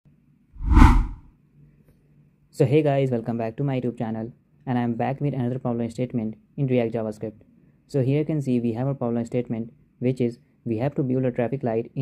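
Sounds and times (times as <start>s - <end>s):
deep whoosh effect: 0.6s - 1.2s.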